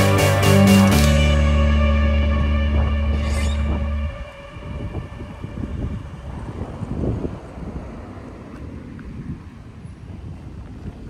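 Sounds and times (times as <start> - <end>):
music: 0.0 - 6.2
low outdoor rumble: 0.0 - 11.0.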